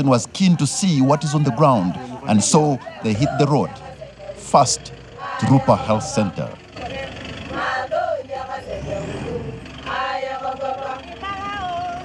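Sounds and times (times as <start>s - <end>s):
vehicle engine running low: 0.0s - 12.0s
voices: 0.0s - 12.0s.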